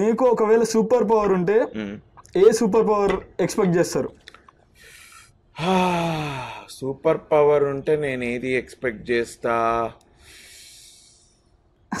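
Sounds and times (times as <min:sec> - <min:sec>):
man breathing in: 0:04.8 - 0:05.4, 0:10.2 - 0:11.5.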